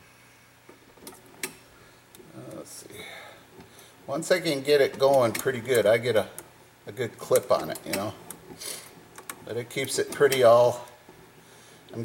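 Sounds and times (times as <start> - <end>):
coil winder clicking: 7.3 - 11.2.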